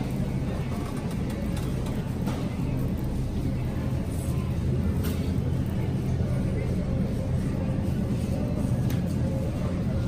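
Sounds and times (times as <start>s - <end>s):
shopping cart rolling: 0.0s - 4.4s.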